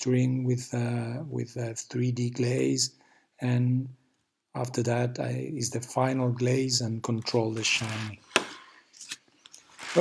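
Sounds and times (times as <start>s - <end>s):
person breathing: 3.0s - 3.4s, 8.3s - 9.0s
person speaking: 4.6s - 8.7s, 9.8s - 10.0s.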